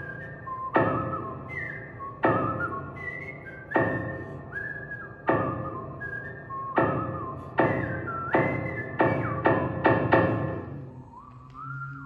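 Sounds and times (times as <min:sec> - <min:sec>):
high whistled melody: 0:00.0 - 0:12.0.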